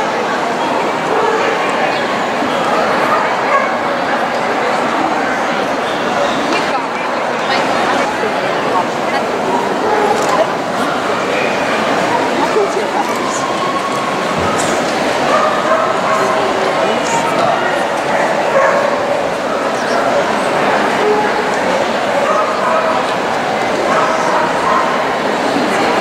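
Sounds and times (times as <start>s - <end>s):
crowd chatter in a hall: 0.0s - 26.0s
small dogs barking: 15.2s - 17.2s, 18.3s - 20.3s, 22.2s - 23.2s, 23.8s - 25.2s.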